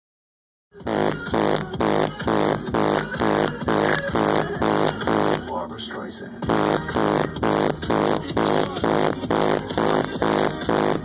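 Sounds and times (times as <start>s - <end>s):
loud electronic music pulsing beat: 0.8s - 5.5s, 6.4s - 11.0s.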